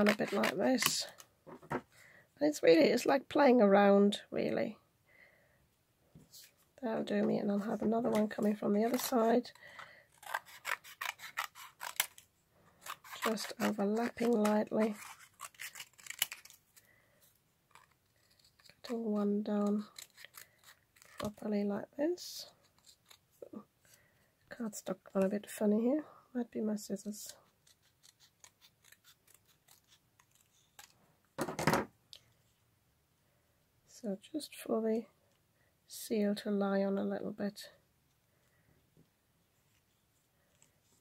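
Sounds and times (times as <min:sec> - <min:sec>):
scissors snipping cardstock: 0:00.0 - 0:01.2, 0:10.2 - 0:12.2, 0:12.8 - 0:16.6.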